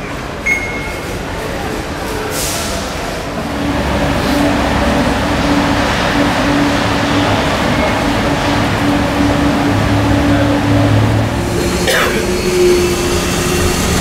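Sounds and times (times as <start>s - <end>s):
machine running hum: 3.4s - 14.0s
droning tone: 3.5s - 14.0s.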